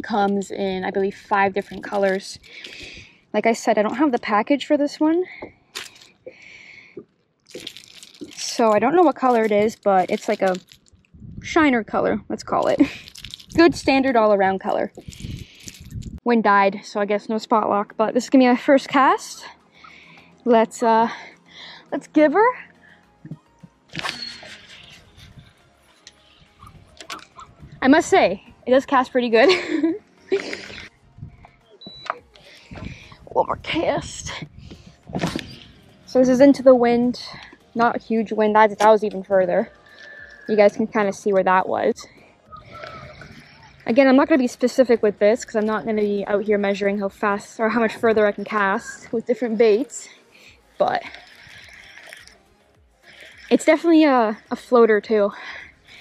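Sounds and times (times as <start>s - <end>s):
fishing reel whirring: 39.6s - 41.3s, 50.8s - 52.4s.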